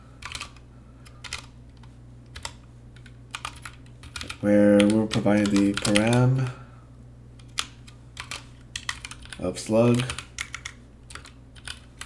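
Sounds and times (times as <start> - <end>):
faint steady low hum: 0.0 - 12.0
keyboard keys clicking: 0.2 - 0.6, 1.2 - 6.3, 7.4 - 12.0.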